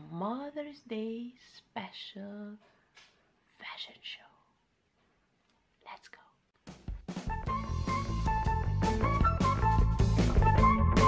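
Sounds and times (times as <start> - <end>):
woman whispering: 3.5 - 4.6, 5.8 - 6.5
music: 6.6 - 11.0.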